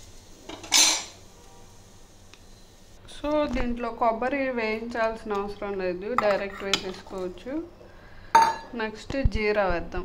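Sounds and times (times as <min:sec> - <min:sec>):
metal kitchenware clattering: 0:00.5 - 0:01.2.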